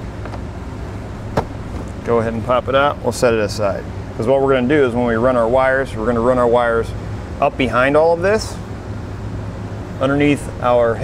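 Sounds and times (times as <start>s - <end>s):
steady low background hum: 0.0s - 11.0s.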